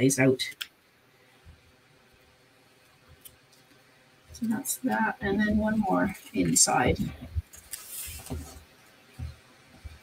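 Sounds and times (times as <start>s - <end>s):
soft bumps of paper handling: 7.0s - 10.0s.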